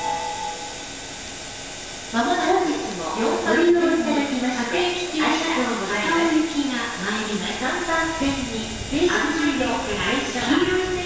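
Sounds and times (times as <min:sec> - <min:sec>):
public-address chime note: 0:00.0 - 0:00.8
steady background hiss: 0:00.0 - 0:11.0.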